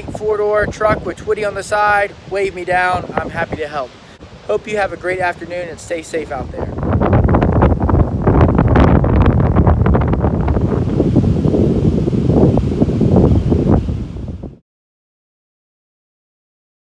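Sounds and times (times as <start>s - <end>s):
gusty wind buffeting microphone: 0.0s - 14.6s.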